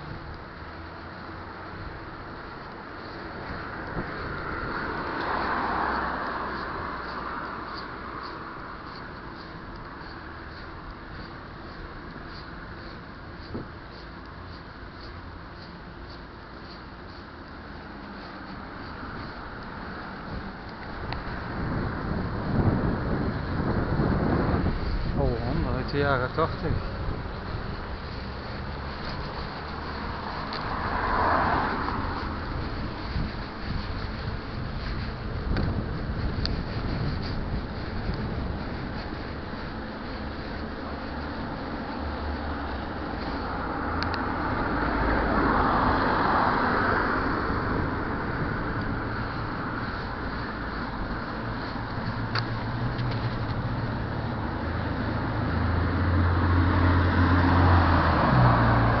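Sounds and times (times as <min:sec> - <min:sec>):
tyres rumbling on asphalt: 0:00.0 - 0:59.0
wind buffeting microphone: 0:01.6 - 0:16.6, 0:17.5 - 0:59.0.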